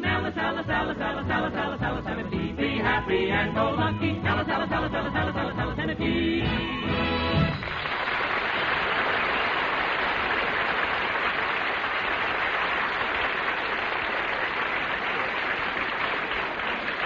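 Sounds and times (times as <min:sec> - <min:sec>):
studio audience applauding: 0:07.4 - 0:17.0.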